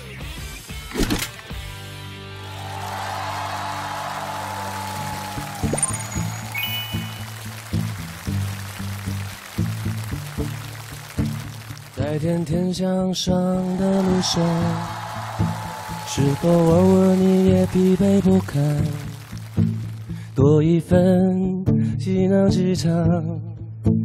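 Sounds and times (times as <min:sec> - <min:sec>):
acoustic guitar playing: 0:05.8 - 0:11.8.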